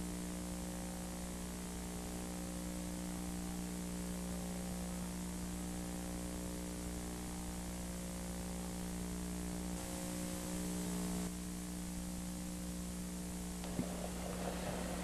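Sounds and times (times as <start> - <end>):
constant hiss: 0.0 - 15.0
electrical mains hum: 0.0 - 15.0.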